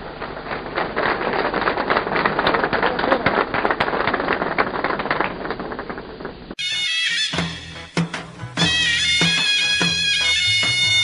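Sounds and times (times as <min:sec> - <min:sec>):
audience applauding: 0:00.1 - 0:06.4.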